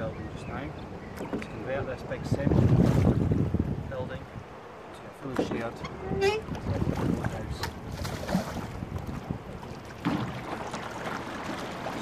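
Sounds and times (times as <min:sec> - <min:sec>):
wind on the microphone: 0:00.0 - 0:04.6, 0:05.2 - 0:12.0
water lapping along a hull: 0:00.0 - 0:12.0
oars knocking: 0:05.2 - 0:12.0.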